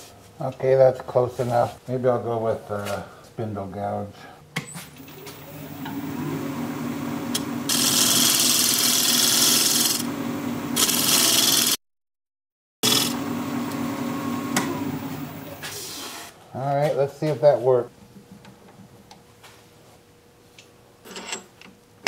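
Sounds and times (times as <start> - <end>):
wood lathe humming: 5.0 - 11.8, 12.8 - 15.8
gouge cutting spinning wood: 5.2 - 11.8, 12.8 - 15.7.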